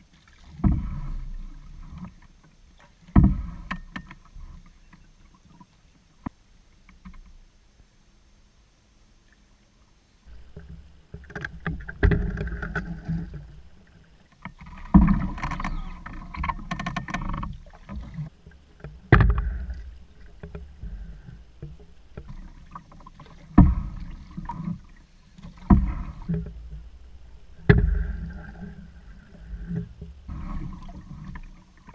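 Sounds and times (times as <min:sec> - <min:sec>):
paddle splash and knock: 0:00.0 - 0:05.6, 0:10.3 - 0:31.9
water wash: 0:30.3 - 0:31.9.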